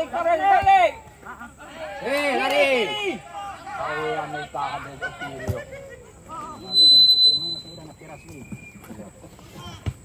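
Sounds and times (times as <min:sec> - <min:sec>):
distant shouting voices: 0:00.0 - 0:08.8
shrill whistle blast: 0:06.6 - 0:08.8.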